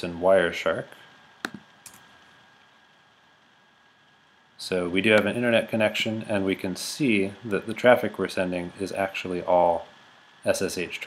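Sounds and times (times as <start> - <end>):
computer mouse clicks: 1.4 - 2.1.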